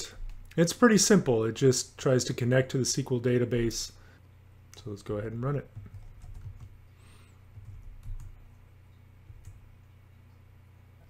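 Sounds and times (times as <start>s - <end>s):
low steady hum: 0.0s - 11.0s
faint keyboard keystrokes: 7.6s - 8.4s.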